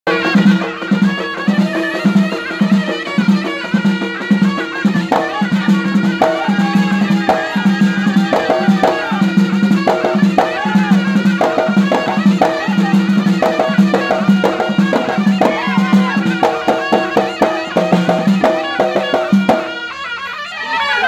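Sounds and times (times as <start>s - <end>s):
frame drums beating: 0.1s - 20.0s.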